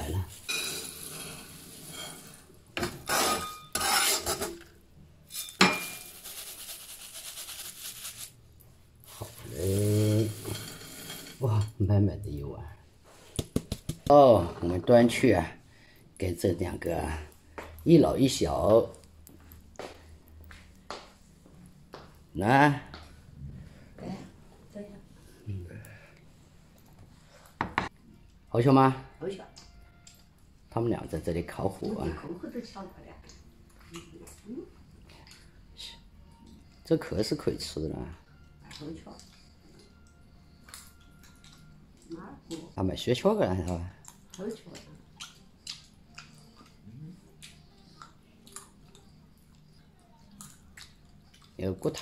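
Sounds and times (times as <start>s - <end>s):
metal spatula scraping a steel pan: 0.4s - 4.7s, 9.6s - 11.4s.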